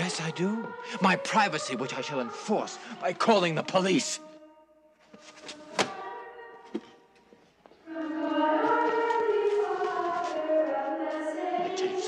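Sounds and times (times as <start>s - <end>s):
children singing in chorus: 0.0s - 4.5s, 5.6s - 6.7s, 7.8s - 12.0s.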